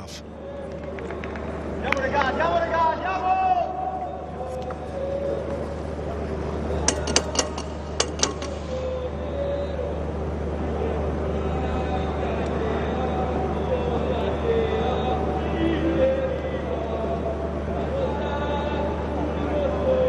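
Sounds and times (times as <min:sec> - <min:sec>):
distant players' voices: 0:00.0 - 0:14.9
steady low hum: 0:00.0 - 0:20.0.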